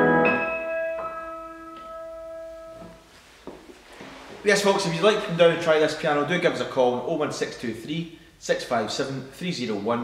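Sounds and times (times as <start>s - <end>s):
piano chord sustaining: 0.0s - 3.0s.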